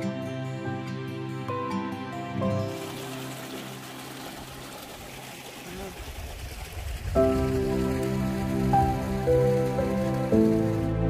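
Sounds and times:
soft instrumental music: 0.0s - 5.3s, 7.2s - 11.0s
water trickling in stream: 2.4s - 11.0s.

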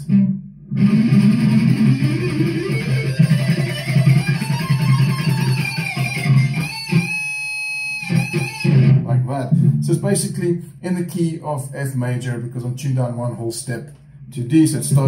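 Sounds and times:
electric guitar lead: 0.0s - 10.7s.

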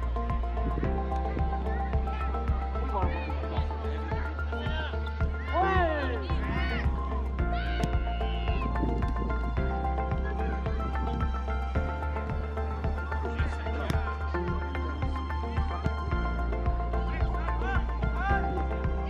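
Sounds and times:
music with deep bass beat: 0.0s - 19.0s.

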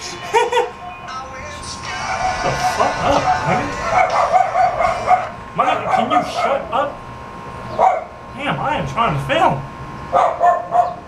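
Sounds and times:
voices: 0.0s - 7.2s, 7.8s - 9.7s
dog yipping and whining: 3.8s - 6.6s, 10.2s - 11.0s.

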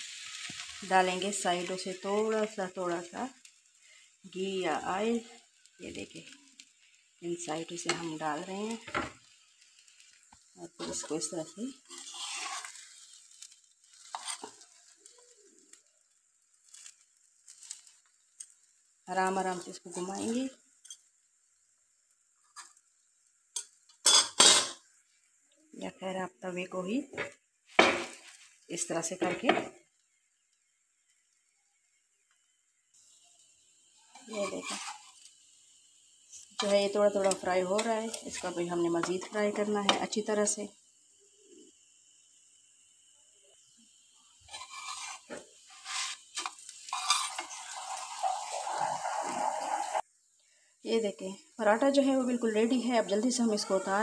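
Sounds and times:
bread sizzling in ghee: 0.0s - 54.0s
tongs scraping and rustling: 5.0s - 21.1s, 34.0s - 35.4s, 36.3s - 39.7s, 44.4s - 48.4s
metal spatula scraping griddle: 9.8s - 15.2s, 34.1s - 35.3s, 44.4s - 50.0s
metal spatula clinking on pan: 23.6s - 24.8s.

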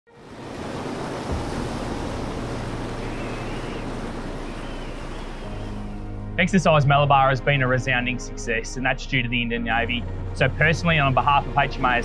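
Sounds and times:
sea water rushing past ship: 0.1s - 6.8s.

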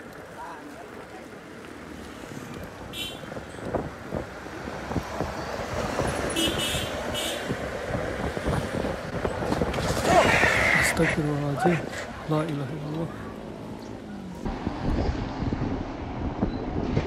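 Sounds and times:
motor vehicle passing close by: 3.7s - 10.8s.

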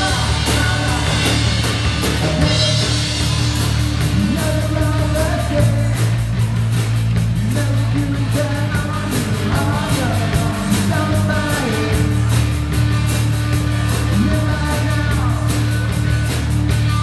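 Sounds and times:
person singing: 0.0s - 3.0s, 4.0s - 6.2s, 7.4s - 12.4s, 14.0s - 15.8s
bass guitar: 0.0s - 17.0s
drum kit: 0.0s - 17.0s
electric guitar: 0.0s - 17.0s.

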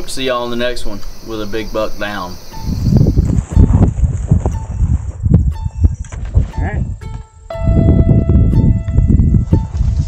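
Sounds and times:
footsteps through dry grass: 9.5s - 10.0s.

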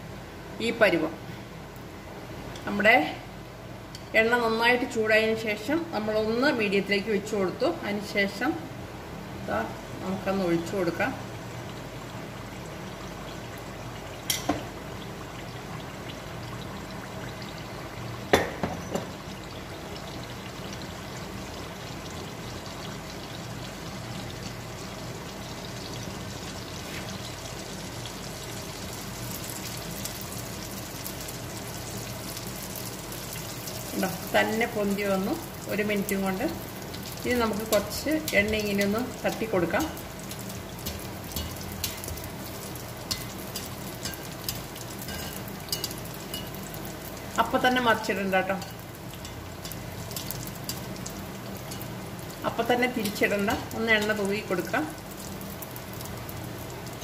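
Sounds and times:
fritter deep-frying in hot oil: 9.4s - 57.0s.

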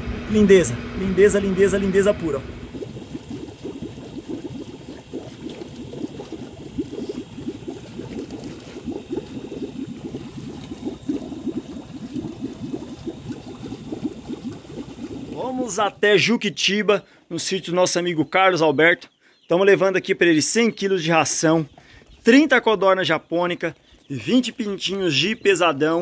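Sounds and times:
small fish splashing in water: 2.6s - 15.8s.

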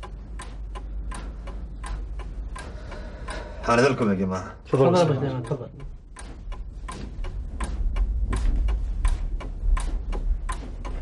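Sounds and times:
low rumble: 5.8s - 11.0s.

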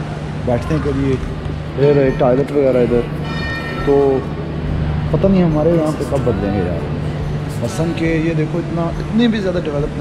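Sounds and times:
low steady hum: 0.0s - 10.0s
train horn blast: 3.2s - 4.1s.

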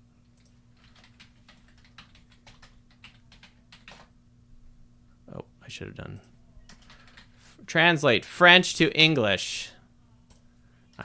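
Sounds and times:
low steady hum: 0.0s - 11.0s
typing on computer keyboard: 0.4s - 4.1s, 6.7s - 7.4s.

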